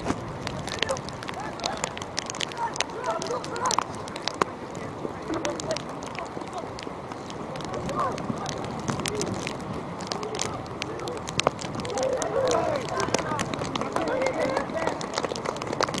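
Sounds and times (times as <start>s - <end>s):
distant players shouting: 0.8s - 4.1s, 11.0s - 15.7s.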